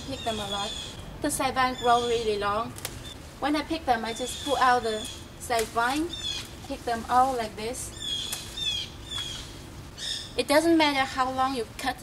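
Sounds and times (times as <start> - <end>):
small bird chirping: 0.0 - 1.0, 6.0 - 6.6, 7.9 - 10.4.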